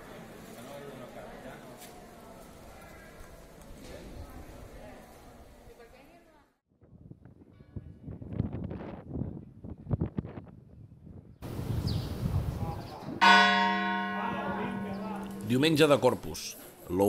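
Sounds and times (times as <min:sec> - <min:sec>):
city background sound: 0:11.4 - 0:17.0
large church bell ringing: 0:13.2 - 0:16.5.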